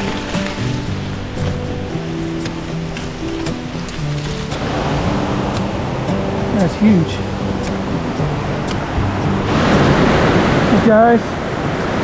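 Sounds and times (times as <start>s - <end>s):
creek rushing over rocks: 0.0s - 12.0s
soft background music: 0.0s - 12.0s.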